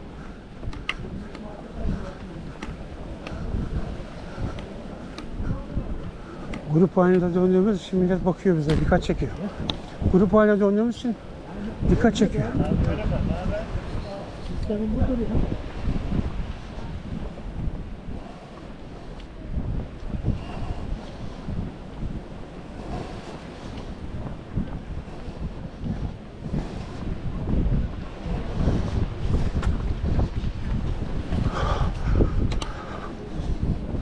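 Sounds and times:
wind buffeting microphone: 0.0 - 34.0.

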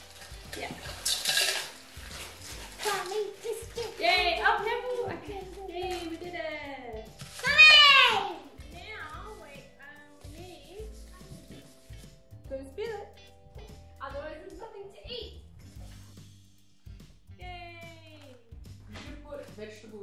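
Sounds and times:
crumbs poured into steel bowl: 0.0 - 4.1
plastic bag rustling: 0.0 - 6.3, 7.2 - 7.8
background music: 0.0 - 20.0
child calling: 7.4 - 8.4.

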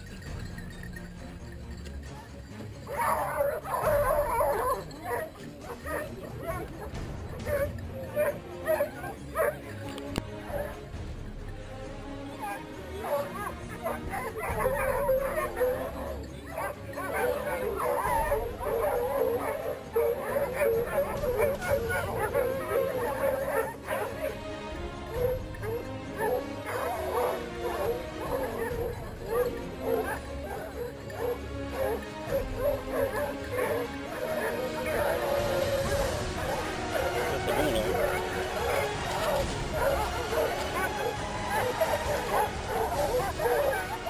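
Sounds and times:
dogs yelping and barking: 0.0 - 11.2, 12.0 - 44.0.

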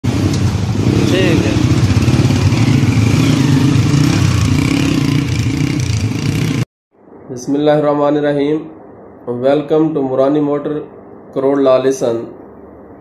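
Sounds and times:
motorcycle engine running: 0.1 - 6.6
man's voice: 0.9 - 1.7.

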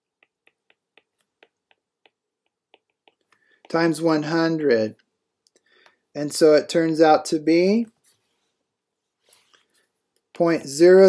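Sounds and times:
stylus tapping on tablet screen: 0.0 - 4.0.

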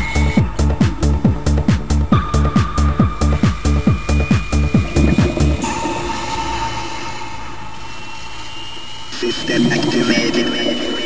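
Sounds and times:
electronic dance beat: 0.0 - 7.8
whooshing synth wash: 0.2 - 11.0
spoken voice sample: 9.2 - 11.0.

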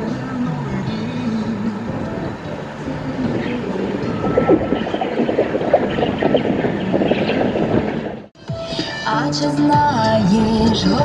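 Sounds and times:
wind buffeting microphone: 0.6 - 8.4
waves washing: 0.8 - 8.4.

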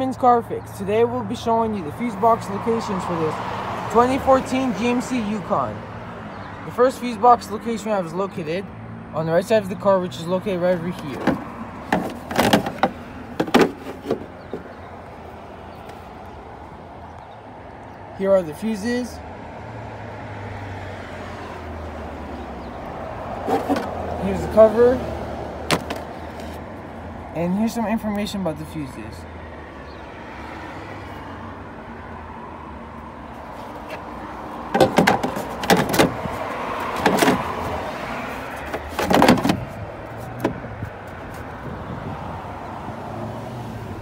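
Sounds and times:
plastic cover rattling: 11.2 - 14.3, 34.8 - 36.1
low vehicle rumble: 32.0 - 44.0.

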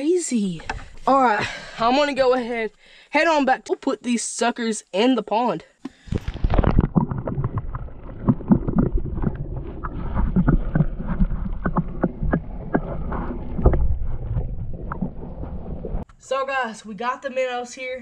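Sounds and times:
muffled underwater water sloshing: 6.0 - 16.1.

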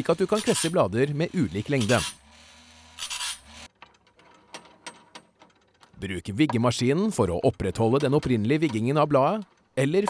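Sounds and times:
short grinding hiss: 1.6 - 3.7.

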